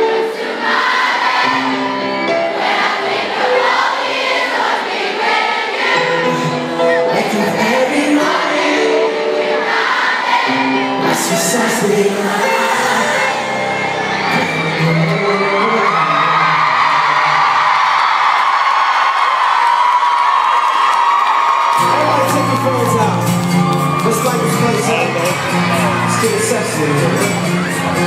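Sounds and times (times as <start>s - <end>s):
crowd screaming: 0.0s - 28.0s
live pop band with singer: 6.1s - 9.4s, 10.8s - 17.8s, 21.8s - 28.0s.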